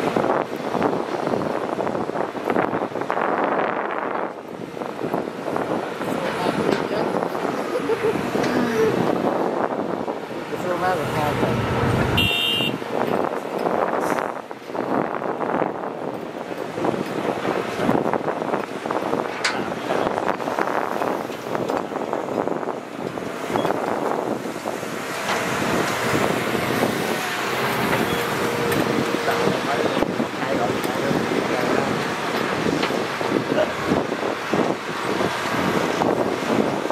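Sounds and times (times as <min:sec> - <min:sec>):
dump truck engine: 0:00.0 - 0:36.9
excavator and truck engines: 0:00.0 - 0:36.9.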